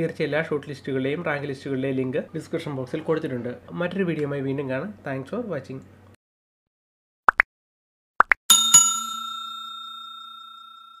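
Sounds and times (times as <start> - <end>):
bell chime ringing: 8.5 - 11.0.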